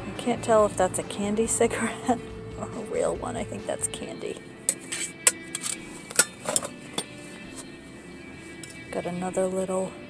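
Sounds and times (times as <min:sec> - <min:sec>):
background music: 0:00.0 - 0:10.0
metal cases clicking and clinking: 0:04.7 - 0:07.1.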